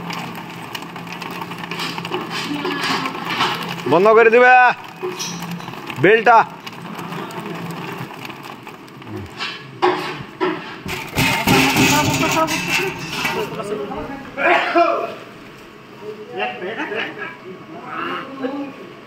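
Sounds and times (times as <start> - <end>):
crackling rustling noise: 0.0 - 9.7.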